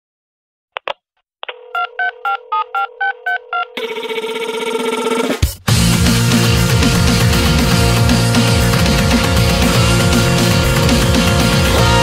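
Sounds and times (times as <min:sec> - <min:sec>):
touch-tone keys dialled: 0:01.5 - 0:04.1
steady dial tone: 0:01.5 - 0:04.6
band music: 0:05.4 - 0:12.0.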